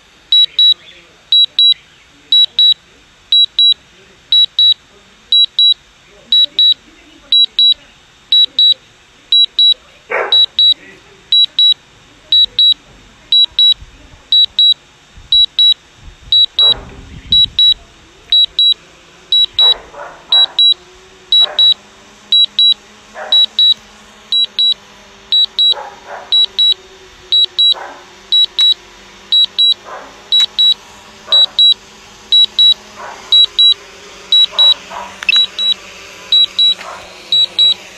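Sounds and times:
high electronic beeping: 0.3s - 3.8s, 4.4s - 4.8s, 5.4s - 9.8s, 10.4s - 30.8s, 31.4s - 37.8s
short clicks: 28.4s - 28.8s, 30.4s - 30.8s, 34.4s - 35.8s.

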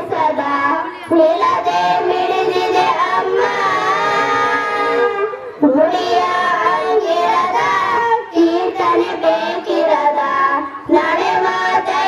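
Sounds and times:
children singing together: 0.0s - 12.0s.

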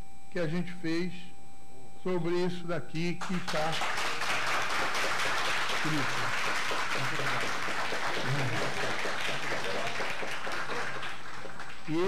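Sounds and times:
audience applause: 3.5s - 12.0s.

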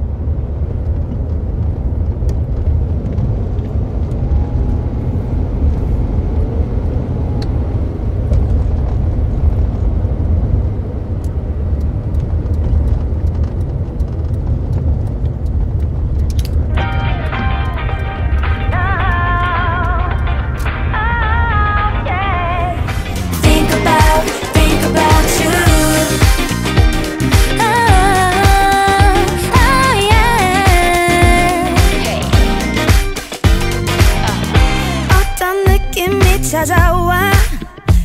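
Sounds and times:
car engine rumble inside cabin: 0.0s - 35.2s, 36.0s - 38.0s
music with held chords: 16.7s - 38.0s.

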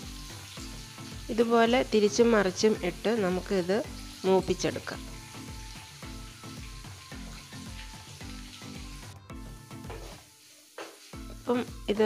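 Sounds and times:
fish sizzling in hot oil: 0.0s - 12.0s
background music with repeating beat: 5.0s - 12.0s
wooden spatula stirring in pan: 9.7s - 11.8s.

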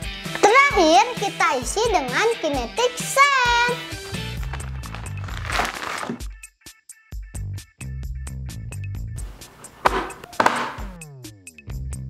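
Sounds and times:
background music beat: 0.0s - 12.0s.

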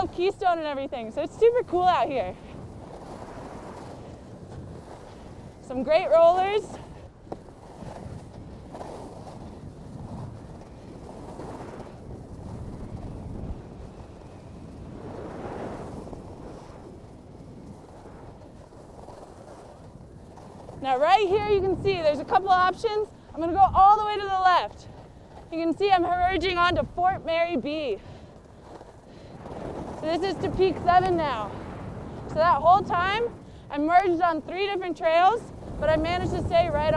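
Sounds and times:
skis scraping over packed snow: 0.0s - 36.9s
wind rushing over microphone: 0.0s - 36.9s.

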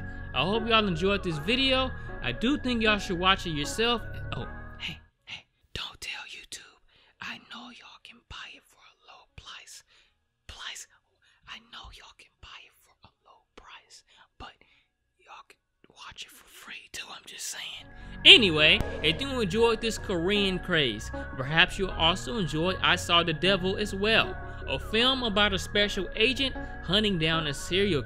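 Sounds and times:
person whispering: 4.8s - 9.9s, 10.5s - 17.9s.

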